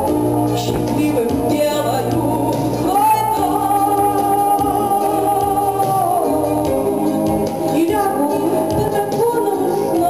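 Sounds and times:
instrumental backing track: 0:00.0 - 0:10.0.

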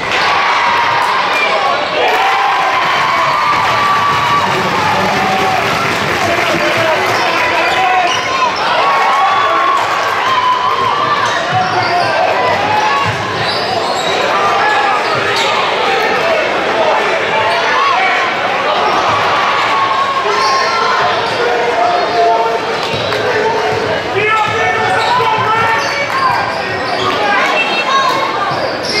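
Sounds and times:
crowd chatter and shouts: 0:00.0 - 0:29.0.

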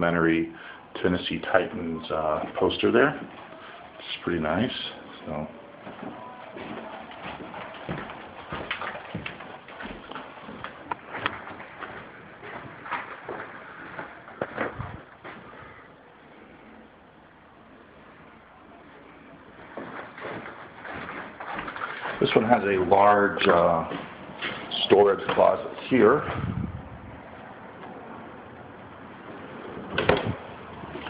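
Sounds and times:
footsteps on tile floor: 0:05.8 - 0:15.7, 0:19.5 - 0:22.3, 0:23.9 - 0:24.7.

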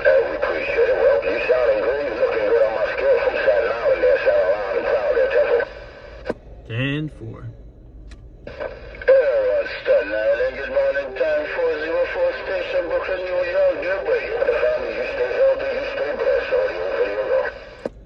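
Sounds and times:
distorted radio voice: 0:00.0 - 0:05.8, 0:06.7 - 0:07.5, 0:08.5 - 0:17.9.

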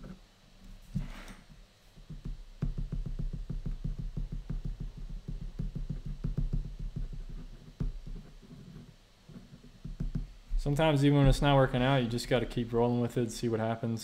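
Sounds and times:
marker scratching on paper: 0:07.2 - 0:09.7.

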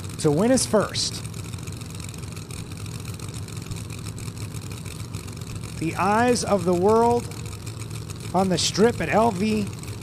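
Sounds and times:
drag car engines idling: 0:00.0 - 0:10.0.

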